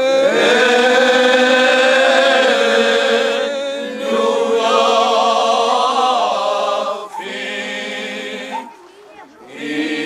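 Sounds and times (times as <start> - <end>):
men's choir singing a cappella: 0.0 - 8.8, 9.5 - 10.0.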